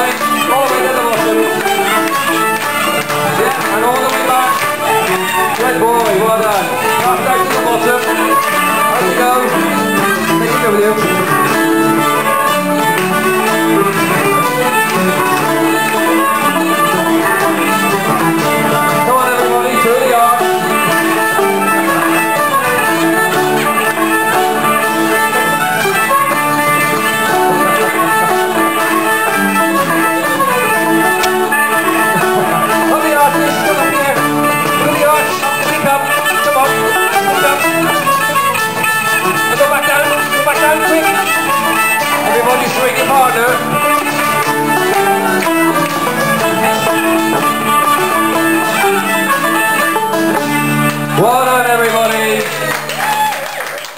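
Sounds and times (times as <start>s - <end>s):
folk band playing dance tune: 0.0s - 53.9s.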